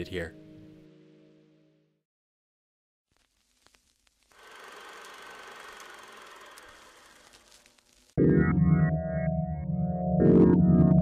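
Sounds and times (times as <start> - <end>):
hiss: 4.3 - 8.1
film projector clatter: 4.4 - 7.3.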